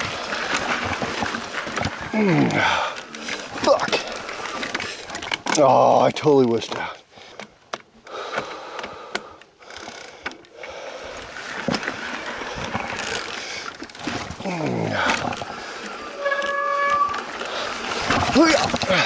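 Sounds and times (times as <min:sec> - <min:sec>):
bike tyres on dirt trail: 0:00.0 - 0:07.5, 0:08.1 - 0:19.0
rider groaning: 0:01.8 - 0:04.7, 0:14.1 - 0:19.0
steady squeal: 0:16.0 - 0:17.3.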